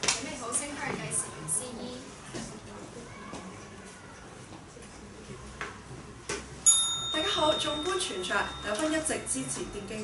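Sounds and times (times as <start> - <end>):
small metal bell ringing: 6.7 - 10.0.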